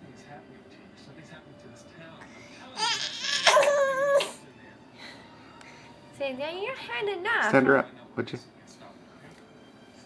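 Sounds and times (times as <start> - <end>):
baby squealing: 2.8 - 4.3.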